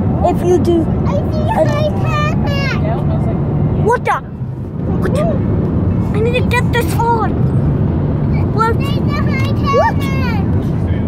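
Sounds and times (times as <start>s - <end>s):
car road and engine rumble: 0.0s - 11.0s
child's voice: 0.2s - 3.0s, 6.1s - 7.4s, 8.3s - 10.6s.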